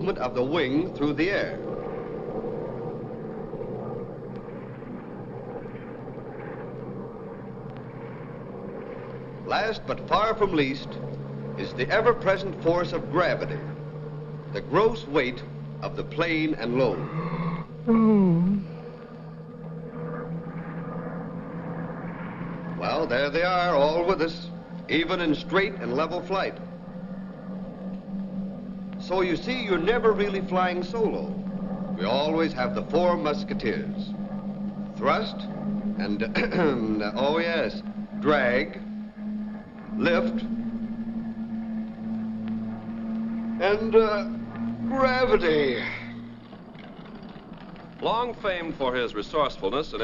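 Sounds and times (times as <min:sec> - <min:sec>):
propeller aircraft engine drone: 0:00.0 - 0:50.0
soundtrack hiss: 0:00.0 - 0:50.0.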